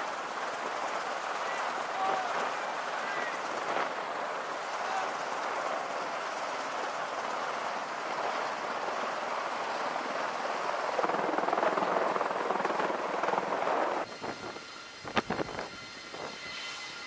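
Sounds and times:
aircraft engines whooshing: 0.0s - 17.0s
wind: 0.0s - 17.0s.

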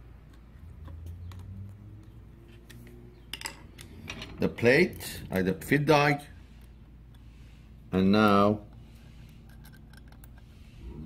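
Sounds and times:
clicks of handling metal parts: 2.5s - 5.2s, 8.2s - 10.5s.

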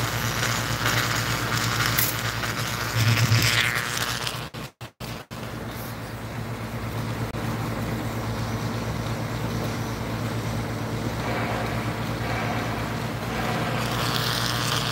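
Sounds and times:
welding machine hum and hiss: 0.0s - 14.9s.

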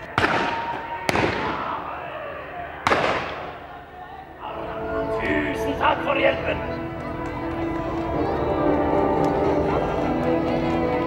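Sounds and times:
cannon shots echoing: 0.1s - 2.0s, 2.8s - 3.6s.

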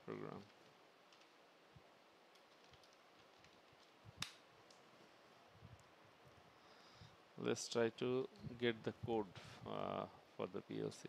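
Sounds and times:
soft keyboard typing: 1.1s - 1.4s, 2.3s - 4.0s.

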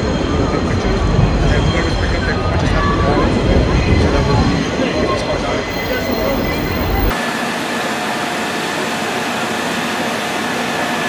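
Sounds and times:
people talking: 0.0s - 7.2s.

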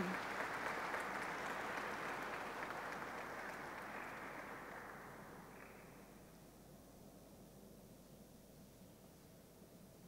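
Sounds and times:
audience applauding: 0.0s - 5.9s.

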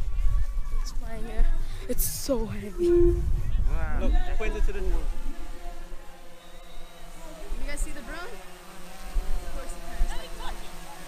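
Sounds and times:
wind on microphone: 0.0s - 6.0s
drone propellers buzzing: 0.9s - 11.0s
distant voices: 4.3s - 11.0s.

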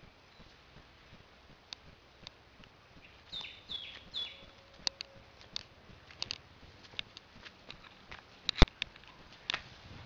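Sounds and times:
sharp clicks and ticks: 0.3s - 9.6s.

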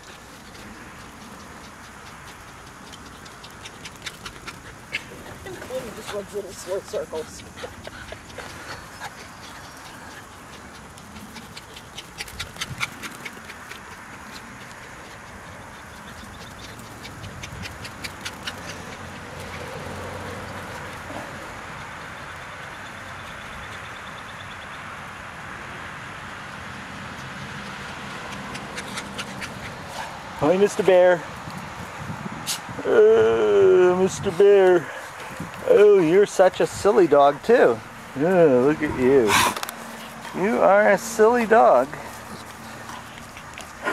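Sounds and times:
steady outdoor hiss: 0.0s - 43.9s.

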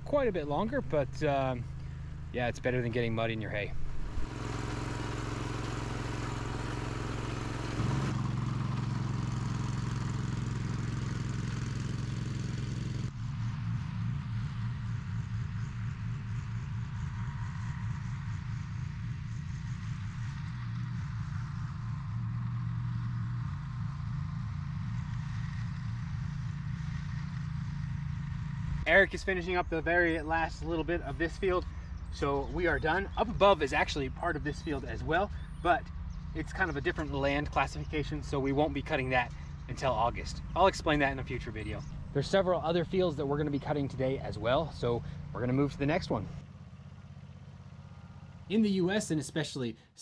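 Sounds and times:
mower engines cutting grass: 0.0s - 49.5s.

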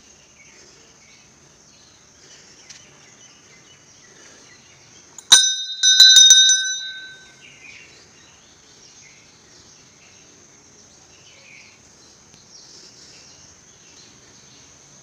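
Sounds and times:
brass bell ringing: 5.3s - 7.3s.

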